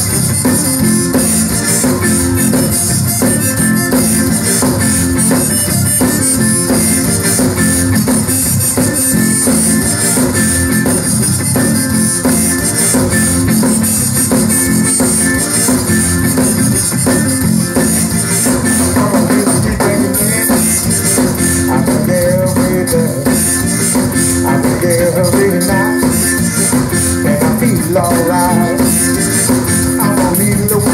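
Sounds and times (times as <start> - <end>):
piano accordion: 0.0 - 18.9
drum kit beat: 0.0 - 30.9
electric guitar: 0.0 - 30.9.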